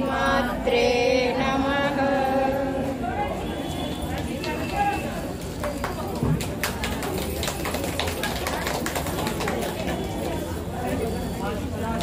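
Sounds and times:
women chanting a hymn: 0.0 - 3.6
people talking: 0.0 - 12.0.

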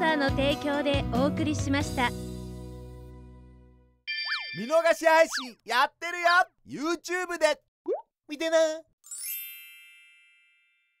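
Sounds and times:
sparkling bell-like chime: 9.1 - 11.0.

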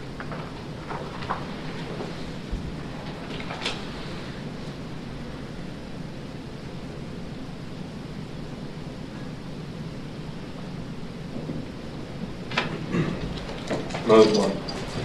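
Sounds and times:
low rushing room hiss: 0.0 - 15.0.

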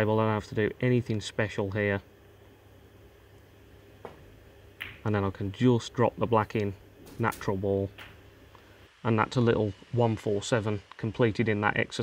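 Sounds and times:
cue tip striking ball: 4.0 - 5.1, 7.9 - 8.3
snooker balls clicking: 4.0 - 5.2, 6.4 - 8.3.

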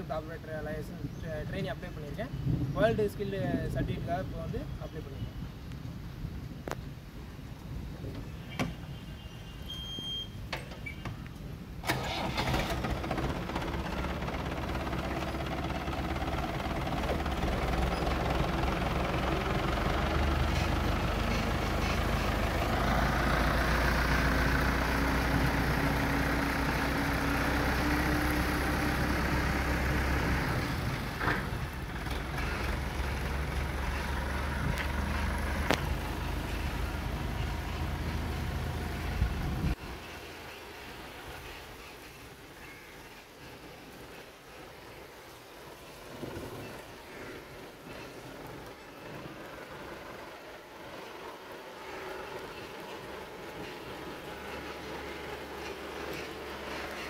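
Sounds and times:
forklift engine running: 11.8 - 39.8, 47.2 - 57.0.

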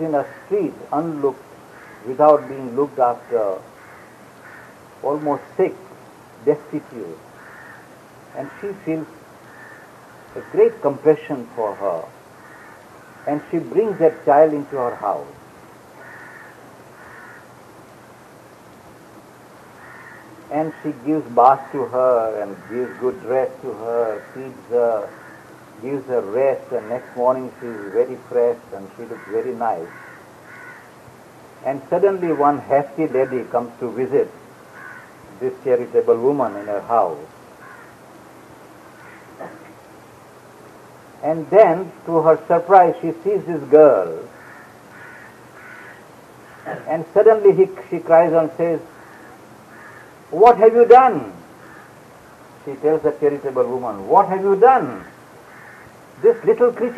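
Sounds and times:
man speaking: 0.0 - 1.4, 2.1 - 3.7, 5.0 - 7.2, 8.4 - 9.1, 10.4 - 12.1, 13.3 - 15.4, 20.5 - 25.1, 25.8 - 29.9, 31.6 - 34.3, 35.4 - 37.3, 39.4 - 39.7, 41.2 - 44.3, 46.7 - 48.9, 50.4 - 51.4, 52.6 - 55.1, 56.2 - 56.9
faint bird calls: 0.0 - 2.6, 3.2 - 5.1, 7.0 - 11.0, 11.6 - 13.6, 16.0 - 17.6, 19.7 - 20.6, 21.6 - 31.0, 31.7 - 35.7, 36.4 - 38.1, 38.8 - 39.8, 44.2 - 47.0, 48.8 - 50.5, 51.2 - 52.6, 54.8 - 56.9
background hiss: 0.0 - 56.9.

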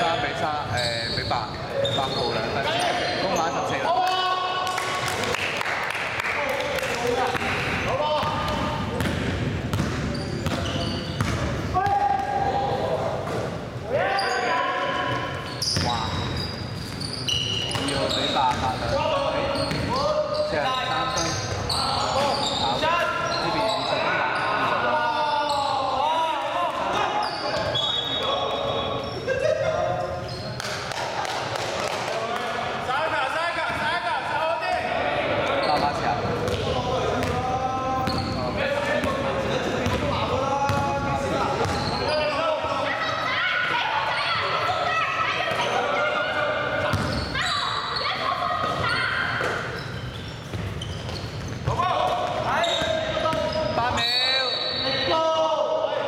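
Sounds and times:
voices calling out: 39.7 - 55.3.

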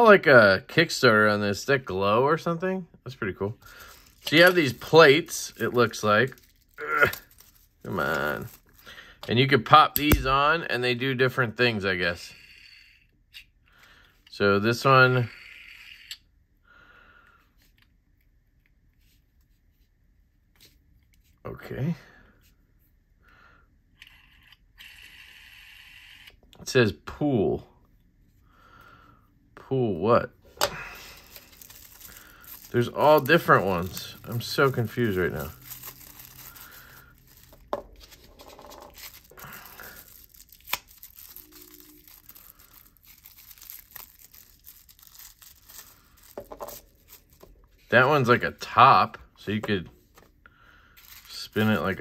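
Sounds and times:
wrapping paper crinkling and tearing: 3.6 - 9.0, 30.8 - 48.4, 51.0 - 52.0.

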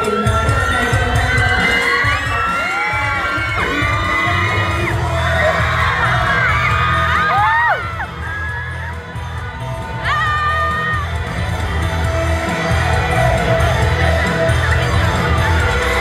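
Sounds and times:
crowd screaming and cheering: 0.0 - 16.0
dance-pop music over loudspeakers: 0.0 - 16.0.

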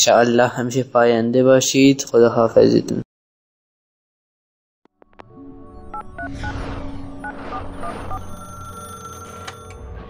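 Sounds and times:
electronic ring tone: 7.2 - 10.0.

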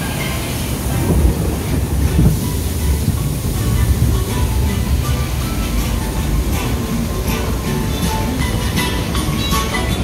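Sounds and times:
log flume lift conveyor rattling: 0.0 - 10.0.

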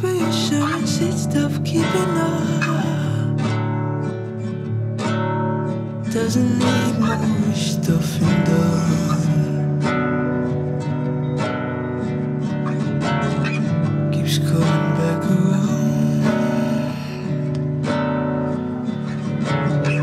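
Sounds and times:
person singing: 0.0 - 3.7, 6.1 - 9.9, 14.2 - 20.0
strummed acoustic guitar: 0.0 - 20.0.

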